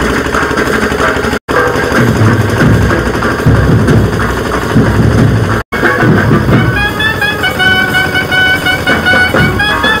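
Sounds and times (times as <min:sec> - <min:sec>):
wind instrument melody: 0:05.8 - 0:10.0.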